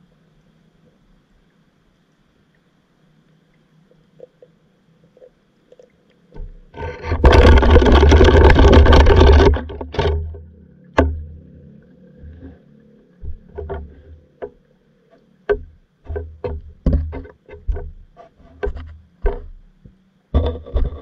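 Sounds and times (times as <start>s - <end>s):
water rushing with deep rumble: 6.4s - 18.1s.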